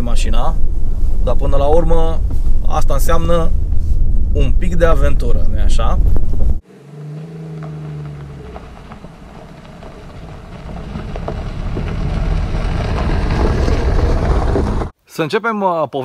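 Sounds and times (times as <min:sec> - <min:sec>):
car engine hum: 0:00.0 - 0:14.9
in-cabin road rumble: 0:00.0 - 0:15.0
tyres crunching on gravel: 0:06.7 - 0:14.9.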